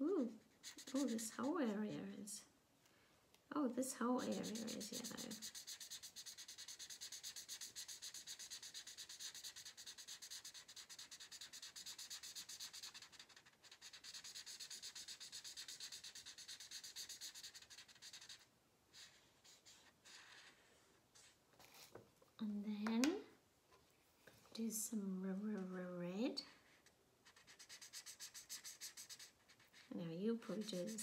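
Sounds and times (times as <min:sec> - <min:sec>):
marker rubbing on paper: 0:00.1 - 0:01.9, 0:04.2 - 0:21.9, 0:26.5 - 0:31.0.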